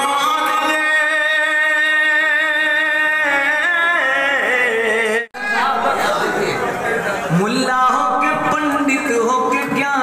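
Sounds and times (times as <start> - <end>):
man singing poetry: 0.0 - 5.4, 7.3 - 10.0
voices echoing in a hall: 0.0 - 10.0.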